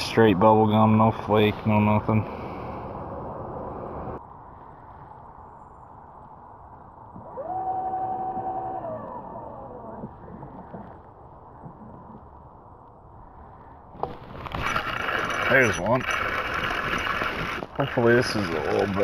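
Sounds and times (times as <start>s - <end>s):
electric trolling motor whining: 7.2s - 10.1s, 14.0s - 19.0s.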